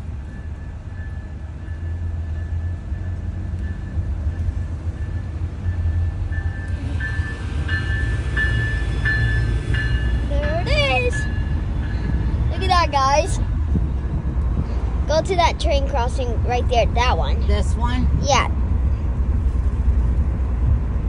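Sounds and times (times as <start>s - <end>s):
train passing low rumble: 0.0s - 21.0s
level-crossing bell ringing: 0.6s - 13.0s.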